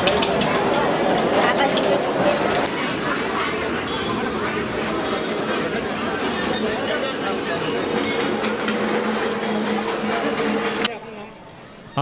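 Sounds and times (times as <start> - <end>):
dining hall hum: 0.0 - 12.0
serving spoons clinking on trays: 6.3 - 10.9.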